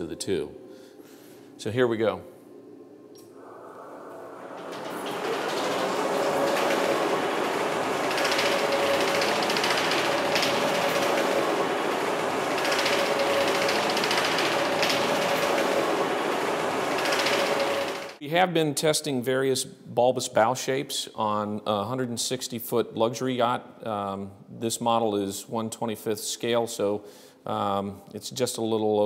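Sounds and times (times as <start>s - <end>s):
steady hum: 0.0s - 18.2s
carriage machinery and water rushing: 3.4s - 18.2s.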